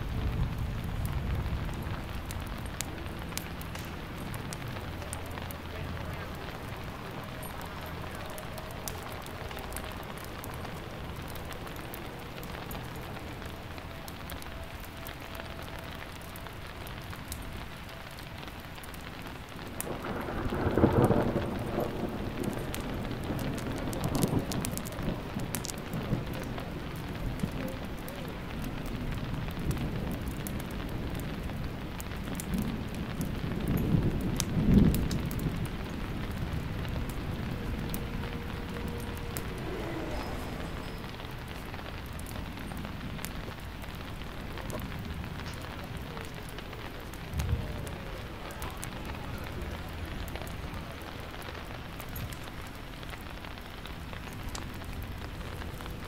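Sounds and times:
steady rain: 0:00.0 - 0:56.0
rolls of thunder: 0:19.8 - 0:27.8, 0:32.5 - 0:43.2.

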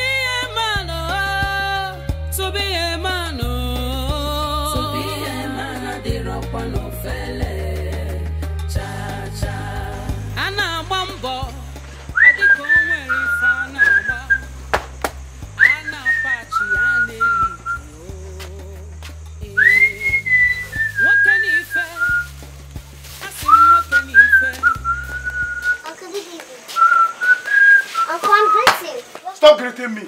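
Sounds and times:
sustained bass chords: 0:00.0 - 0:25.7
whistled melody: 0:15.6 - 0:17.9, 0:19.6 - 0:22.4, 0:23.4 - 0:25.9, 0:26.8 - 0:28.7.

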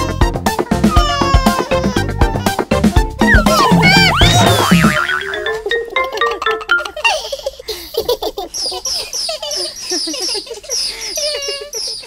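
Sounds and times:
children's music: 0:00.0 - 0:07.5.

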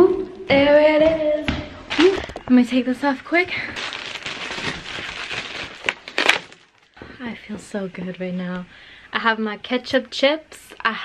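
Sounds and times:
plastic wrapping crinkling: 0:01.9 - 0:08.2.

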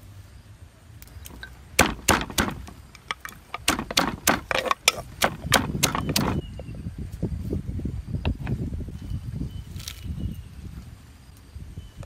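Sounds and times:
pestle pounding in stone mortar: 0:01.4 - 0:06.4.

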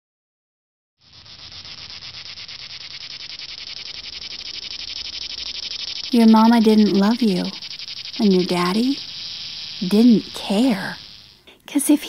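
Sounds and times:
insects chirping: 0:01.0 - 0:12.0.

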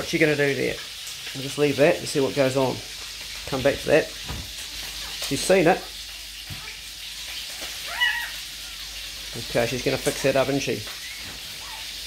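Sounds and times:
faint steady hiss: 0:00.0 - 0:12.0
newborn puppy squeaky whine: 0:07.8 - 0:08.9, 0:11.0 - 0:12.0.

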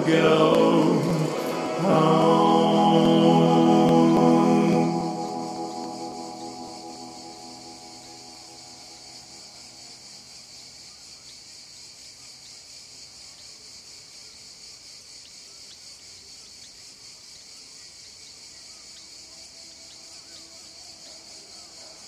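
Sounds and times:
insects chirring: 0:00.0 - 0:22.0.

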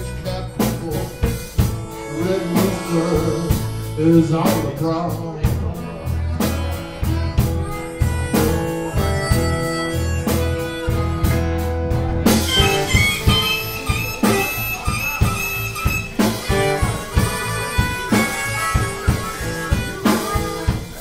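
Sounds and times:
amplified harmonica solo: 0:00.0 - 0:21.0
drum kit steady beat: 0:00.0 - 0:21.0
live band playing: 0:00.0 - 0:21.0.

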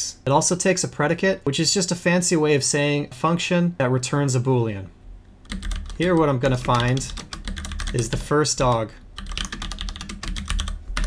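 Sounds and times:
typing on keyboard: 0:05.5 - 0:11.0.

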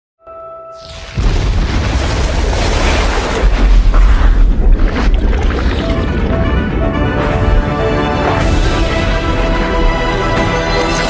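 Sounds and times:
deep explosion-like rumble: 0:00.9 - 0:09.6.

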